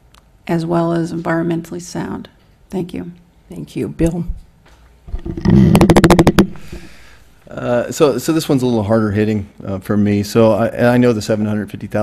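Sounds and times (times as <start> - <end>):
microphone handling thud: 5.1 - 7.0.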